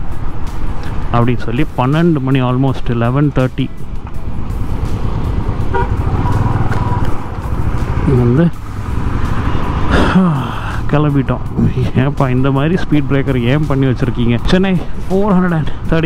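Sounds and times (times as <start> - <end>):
motorcycle engine running: 3.8 - 14.0
wind buffeting: 3.9 - 16.0
vehicle horn toot: 5.7 - 7.1.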